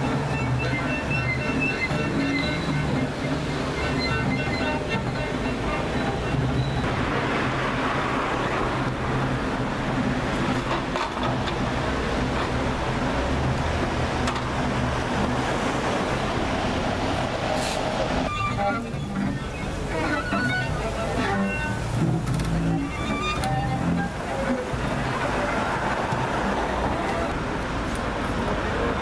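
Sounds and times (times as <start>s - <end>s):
rushing scraping noise: 0.0s - 27.4s
bowed double bass and violin drone: 0.0s - 27.6s.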